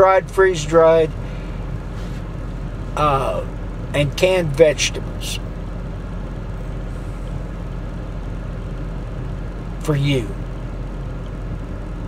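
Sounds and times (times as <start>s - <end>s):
car idling inside cabin: 0.0s - 12.0s.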